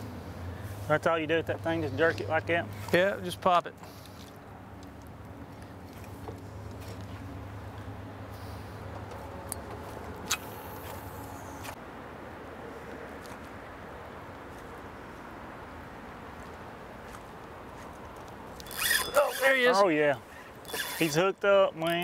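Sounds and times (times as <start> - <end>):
outdoor background noise on water: 0.0 - 22.0.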